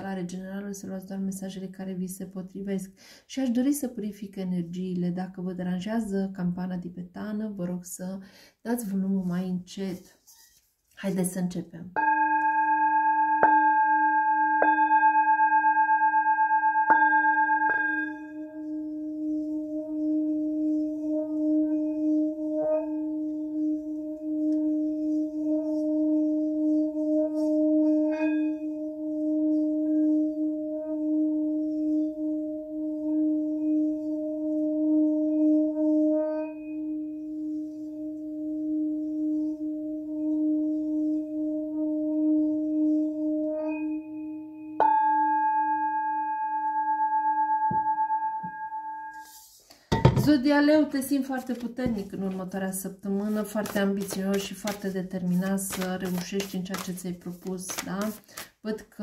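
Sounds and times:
singing bowl ringing: 12.0s - 25.0s, 27.0s - 49.4s.

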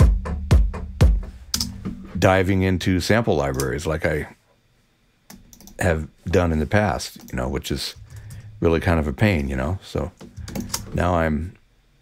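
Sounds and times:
electronic kick drum thuds: 0.0s - 2.2s.

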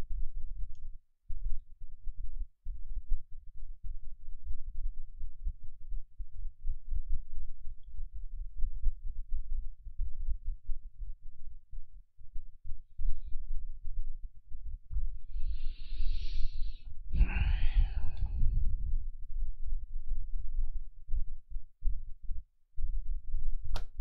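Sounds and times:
low uneven rumble: 12.7s - 24.0s.

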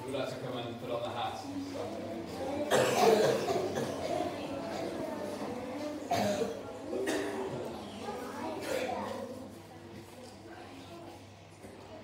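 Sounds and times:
murmur of children: 0.0s - 12.0s
loud cough: 2.7s - 4.2s, 6.1s - 7.5s, 8.6s - 9.0s.

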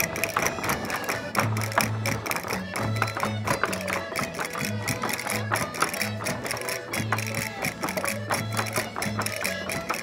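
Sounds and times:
plucked strings: 0.0s - 10.0s
sharp clicking percussion: 0.0s - 10.0s.

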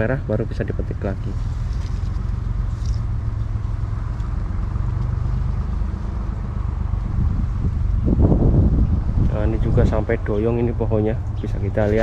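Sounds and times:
engine running low rumble: 0.0s - 12.0s.

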